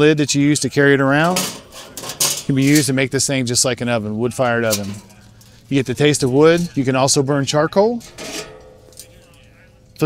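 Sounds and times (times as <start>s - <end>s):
faint steady hum: 0.0s - 10.0s
metal grill grate clinking: 0.9s - 7.2s, 7.8s - 10.0s.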